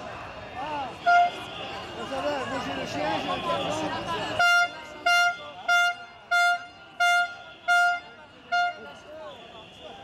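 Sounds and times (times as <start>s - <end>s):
horn short blasts: 4.4s - 9.0s.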